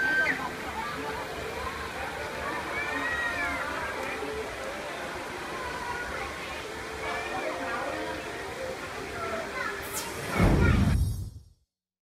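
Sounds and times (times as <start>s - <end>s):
children's voices: 0.0s - 11.0s
falling whoosh: 9.8s - 11.6s
low glitch transition hit: 9.9s - 11.6s.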